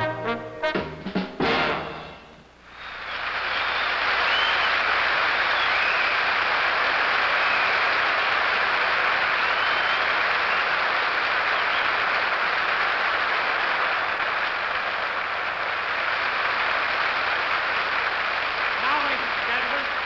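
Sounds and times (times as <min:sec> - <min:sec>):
audience applauding: 0:02.7 - 0:20.0.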